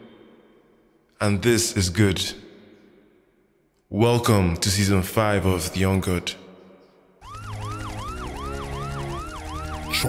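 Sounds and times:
siren yelping: 7.2 - 10.0.

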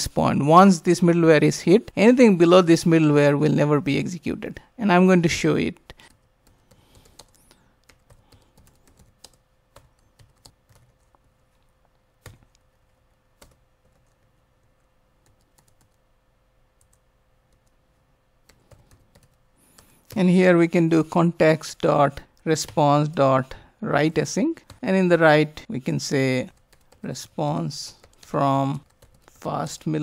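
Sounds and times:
typing on computer keyboard: 6.1 - 11.2, 12.2 - 12.6, 13.4 - 14.3, 15.2 - 16.0, 18.4 - 20.2, 28.0 - 29.3.

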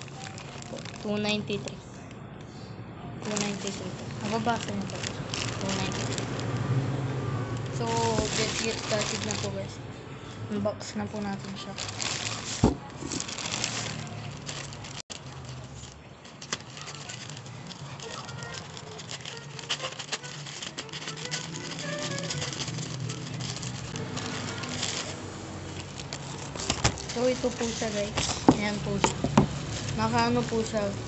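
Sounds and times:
plastic bag crackling and tearing: 0.0 - 1.8, 3.2 - 6.9, 7.5 - 9.8, 11.2 - 31.0.

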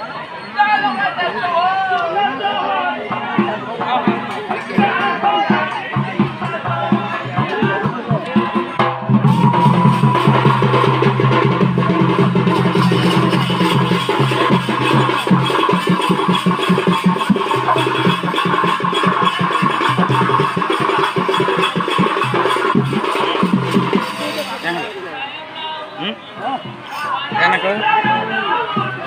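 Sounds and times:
held melodic tone: 3.1 - 28.2
hand drum fast rhythm: 3.2 - 24.5.

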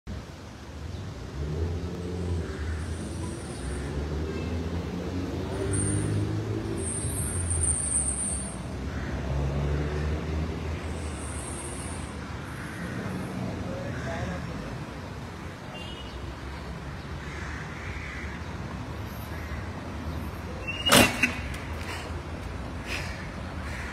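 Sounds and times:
cars driving past: 0.2 - 23.9.

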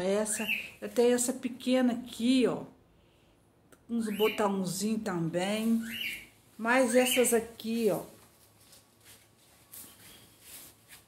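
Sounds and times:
faint rustles of handling: 8.0 - 11.0.

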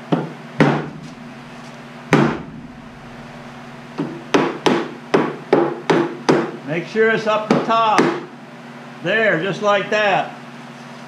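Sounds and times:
hammer tapping on wooden boards: 4.0 - 6.6.

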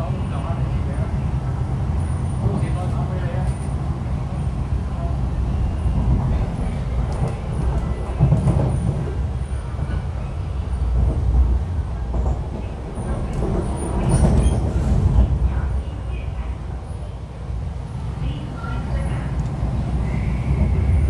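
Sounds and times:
train interior rumble: 0.0 - 21.0.

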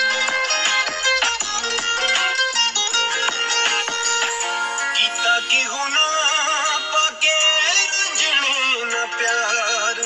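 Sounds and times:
man singing ornamented lines: 4.9 - 10.0.

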